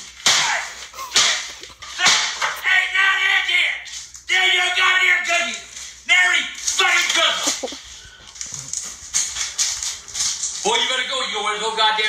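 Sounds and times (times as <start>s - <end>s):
noisy commotion: 0.3s - 4.3s, 5.1s - 10.6s.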